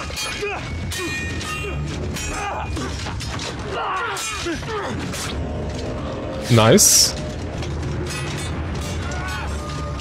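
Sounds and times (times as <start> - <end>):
fighters grunting and shouting: 0.0 - 5.4
steel blades clashing: 0.0 - 5.4, 7.9 - 10.0.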